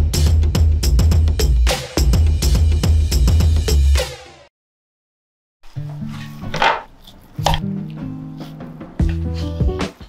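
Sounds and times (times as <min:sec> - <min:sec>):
background music: 0:05.8 - 0:10.0.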